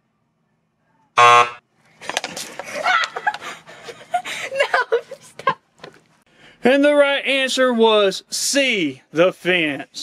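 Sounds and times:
wrong-answer buzzer: 0:01.2 - 0:01.6.

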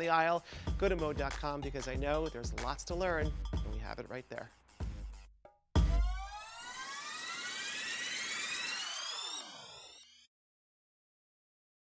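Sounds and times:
sweep of crossing tones: 0:05.8 - 0:10.3.

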